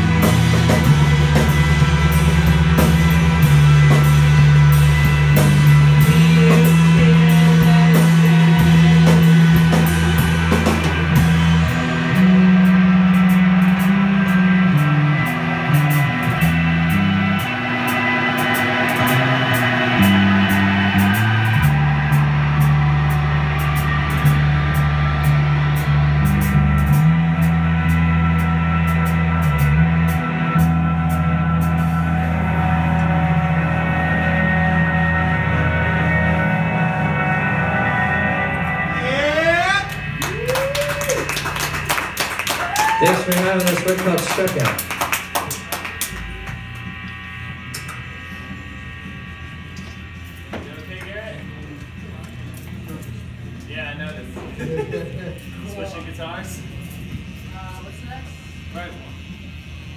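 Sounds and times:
amplifier electric hum: 0.0s - 59.9s
bass guitar low notes: 0.0s - 59.9s
drums and cymbals: 0.0s - 59.9s
electric guitar: 0.0s - 59.9s
people clapping: 39.8s - 47.0s, 47.7s - 48.0s.

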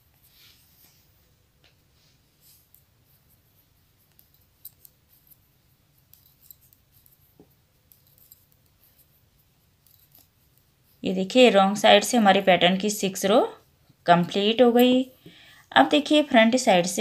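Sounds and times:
knitting needles clicking: 4.0s - 5.4s, 6.0s - 9.1s, 9.8s - 11.0s.

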